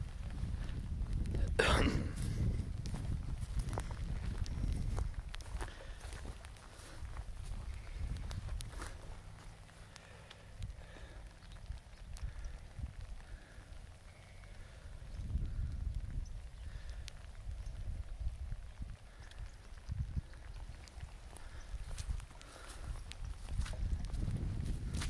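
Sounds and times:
footsteps on muddy ground: 0.0 - 15.6, 16.7 - 25.0.

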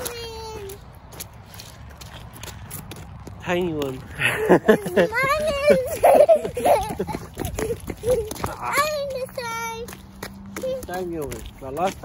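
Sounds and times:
footsteps in rubber boots on mud: 0.0 - 5.8, 6.8 - 12.0.

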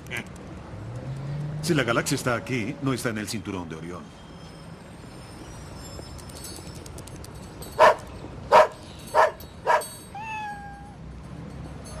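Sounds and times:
cat meowing: 10.1 - 11.0.

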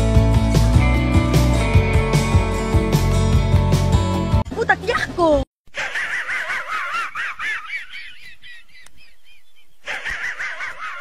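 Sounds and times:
cartoon dog wheezing snicker: 9.8 - 11.0.

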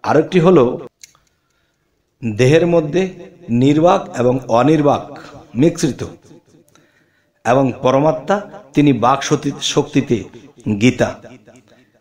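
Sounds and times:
man speaking: 2.2 - 6.2, 7.4 - 11.4.

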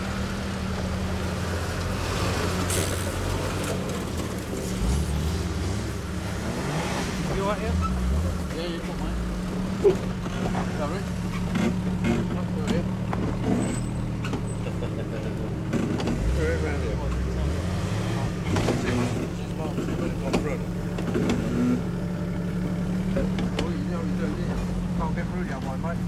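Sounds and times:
car engine revving: 0.0 - 26.0.

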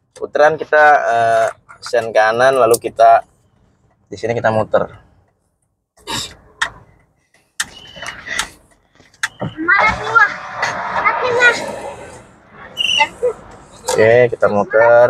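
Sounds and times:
indistinct voices talking: 9.2 - 15.0.

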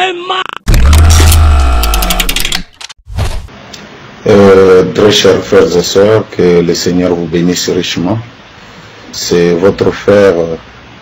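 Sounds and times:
deep bass hit: 0.7 - 1.9.

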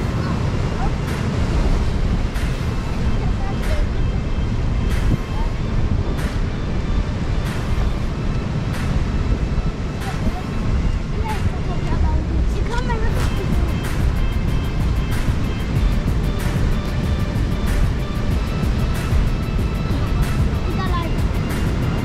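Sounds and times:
surf breaking on rocks: 0.0 - 22.0
wind rumbling on microphone: 0.0 - 22.0.

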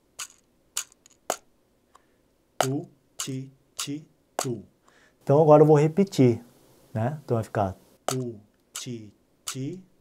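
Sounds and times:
box drum finger strikes: 2.6 - 3.4, 4.4 - 4.6, 8.1 - 8.3.

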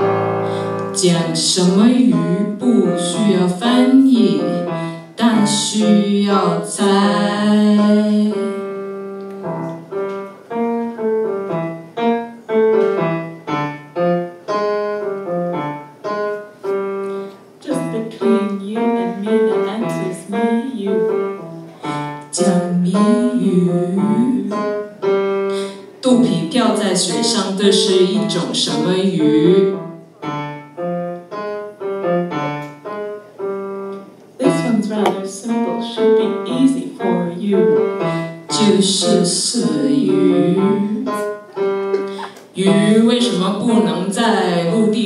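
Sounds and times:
keyboard playing piano sound: 0.0 - 45.0
person singing: 38.5 - 41.4.

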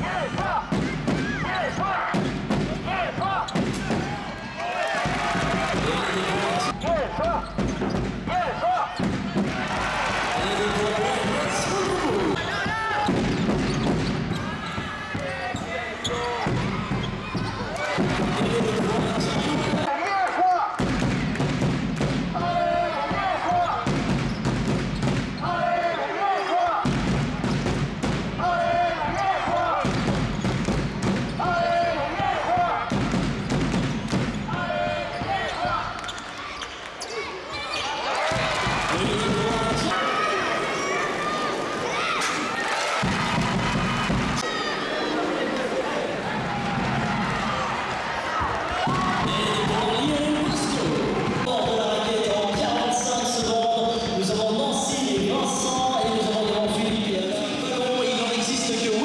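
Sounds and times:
crowd voices: 0.0 - 21.4, 34.4 - 59.0
basketball bouncing on wooden court: 23.1 - 25.4.

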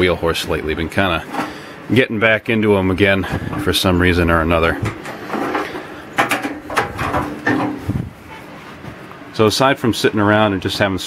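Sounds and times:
mechanical clicks and knocks: 4.8 - 7.9.

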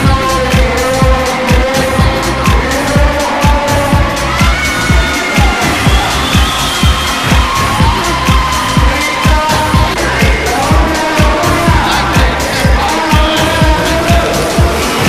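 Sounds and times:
music with fast thumping beat: 0.0 - 15.0.

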